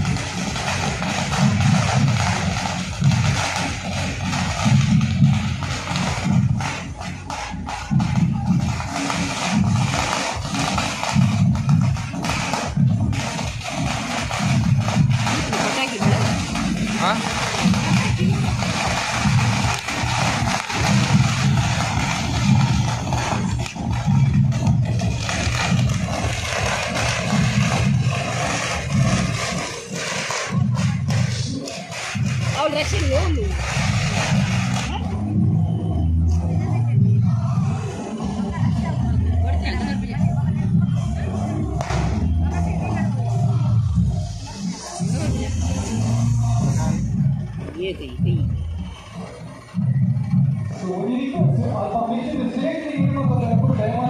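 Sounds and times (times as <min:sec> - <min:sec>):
large crowd noise: 0:00.0 - 0:54.0
procession music with pulsing beat: 0:00.0 - 0:54.0.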